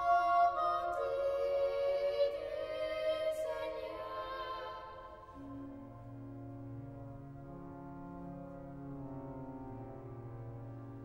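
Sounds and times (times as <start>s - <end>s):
choir singing: 0.0s - 5.7s
pipe organ low chord: 3.4s - 11.0s.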